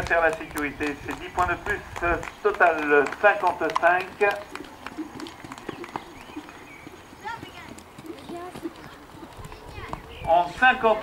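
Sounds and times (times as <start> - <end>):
pony hooves trotting on sand: 0.0 - 11.0
faint voices: 0.6 - 11.0.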